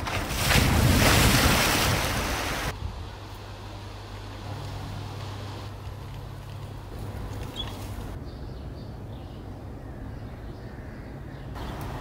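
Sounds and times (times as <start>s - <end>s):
water splashing and sloshing: 0.0s - 2.8s.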